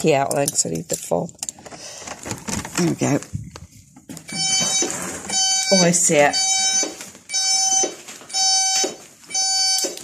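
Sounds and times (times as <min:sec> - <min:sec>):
alarm high-pitched beep: 0:04.3 - 0:10.0.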